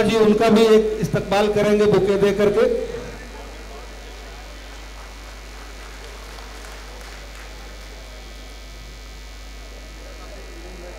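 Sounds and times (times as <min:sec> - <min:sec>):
electrical mains hum: 0:00.0 - 0:10.9.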